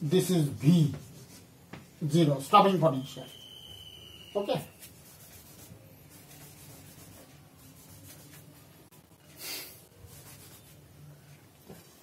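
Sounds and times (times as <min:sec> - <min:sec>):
chalk scratching on blackboard: 0:00.9 - 0:01.6, 0:04.5 - 0:08.8, 0:09.8 - 0:10.9.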